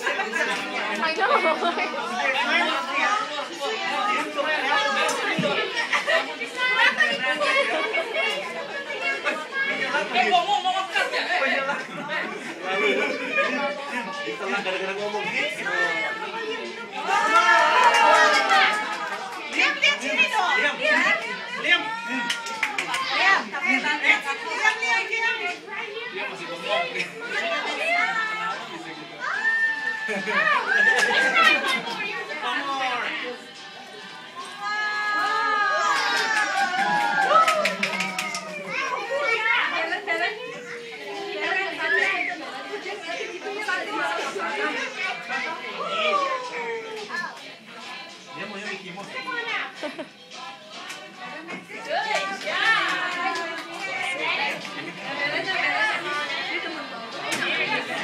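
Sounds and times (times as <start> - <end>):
children and adults chattering: 0.0 - 58.0.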